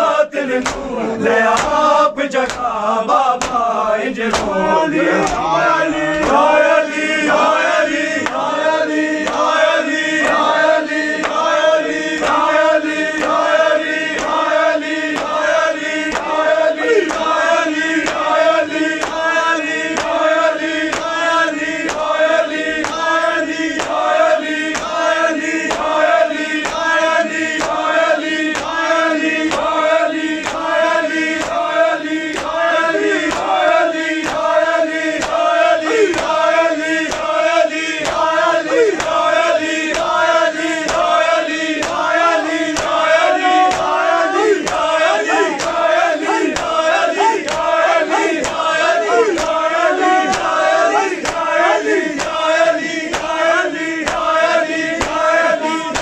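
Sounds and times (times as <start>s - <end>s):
men chanting in unison: 0.0s - 56.0s
hands slapping chests: 0.6s - 2.7s, 3.4s - 3.7s, 4.3s - 6.6s, 7.3s - 56.0s.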